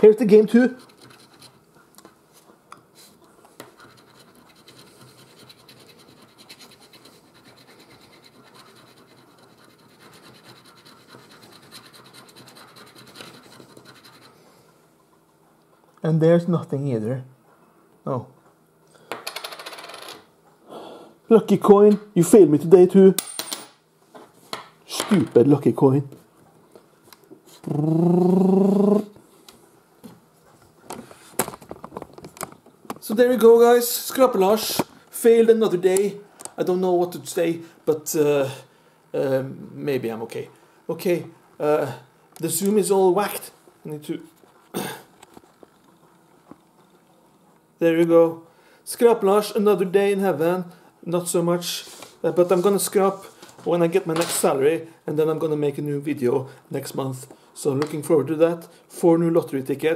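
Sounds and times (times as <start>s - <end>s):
man groaning: 27.7s - 29.1s.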